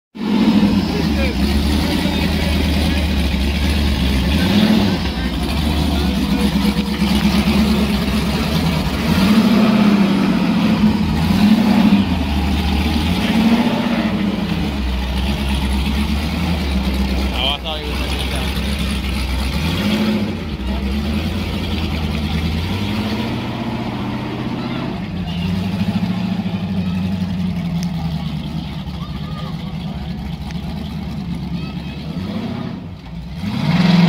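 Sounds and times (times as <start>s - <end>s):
engine revving: 0.2s - 34.0s.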